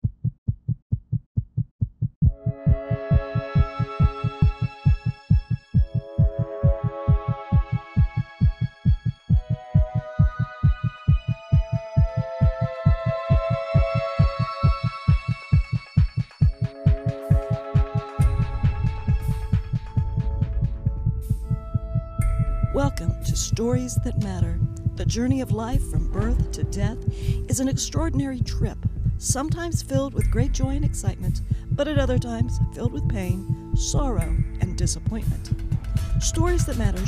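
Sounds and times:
heartbeat double thump: 0.0s - 37.0s
slow music of sustained chords: 2.3s - 5.4s
deep rumble: 18.2s - 37.0s.

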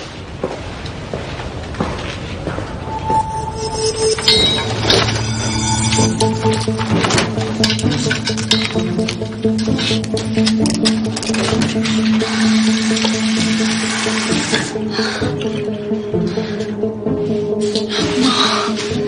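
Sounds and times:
background music with held tones: 2.8s - 19.0s.

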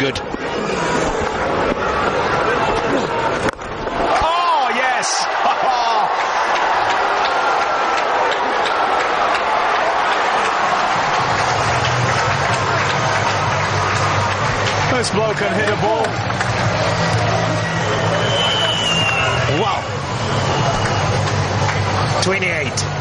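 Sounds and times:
stadium crowd cheering: 0.0s - 23.0s.

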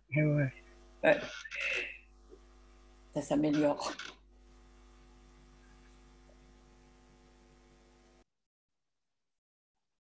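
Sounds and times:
faint electrical mains hum: 0.0s - 8.2s.

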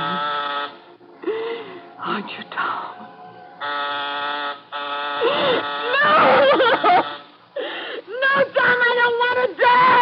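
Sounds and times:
steady buzzing tone: 0.0s - 1.2s, 3.6s - 7.7s
woman screaming in terror: 5.2s - 6.8s, 8.2s - 10.0s.

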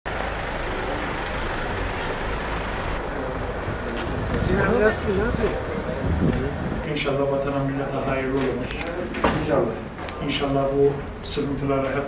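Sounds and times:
street traffic: 0.0s - 12.0s
vehicle engine running: 0.1s - 12.0s.

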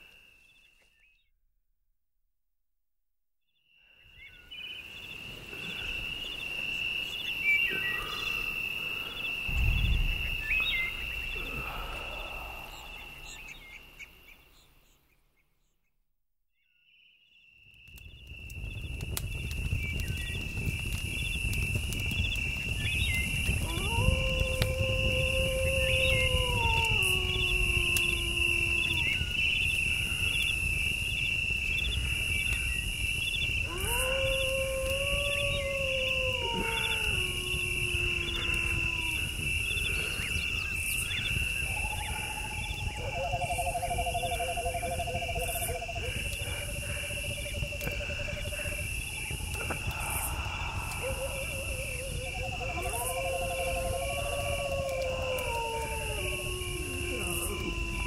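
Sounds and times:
pulsing hiss: 7.4s - 13.8s, 45.5s - 54.0s
low rumble: 9.4s - 13.9s.

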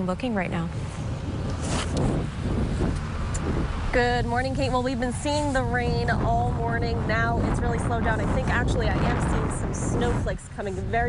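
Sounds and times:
low rumble and hiss outdoors: 0.0s - 11.0s.

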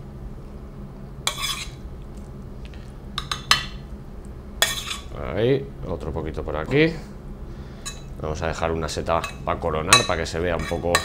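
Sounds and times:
spoon scraping a frying pan: 1.3s - 1.8s, 4.6s - 5.1s, 7.8s - 8.1s, 9.2s - 11.0s.

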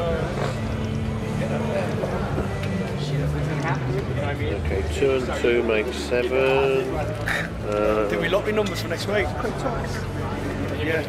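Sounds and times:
people laughing: 6.9s - 8.2s.

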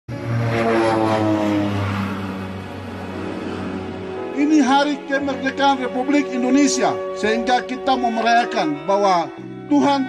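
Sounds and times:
propeller aircraft flying by: 0.1s - 9.7s.

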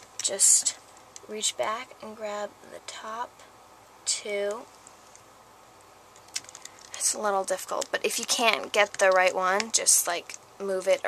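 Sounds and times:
faint plastic clicks: 4.5s - 11.0s.

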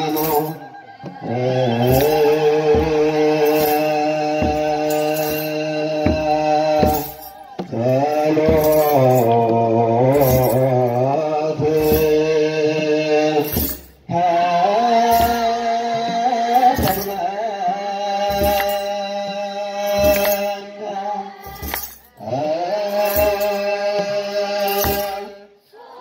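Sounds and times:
regular beat: 0.0s - 14.2s
children's choir singing a hymn: 0.0s - 26.0s.

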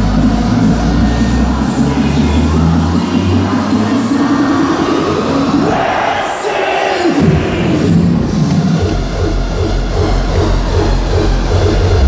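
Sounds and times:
hardstyle dance music: 0.0s - 12.0s
large arena crowd: 0.0s - 12.0s.

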